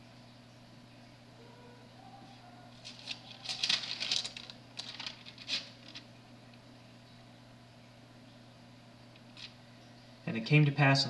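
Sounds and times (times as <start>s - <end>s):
faint low hum: 0.0s - 11.0s
soft rustling handling noises: 2.7s - 6.1s.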